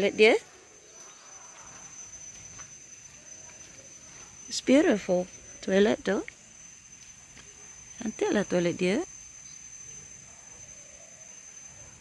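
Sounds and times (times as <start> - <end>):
faint outdoor background noise: 0.0 - 12.0
insects singing high-pitched drone: 0.0 - 12.0.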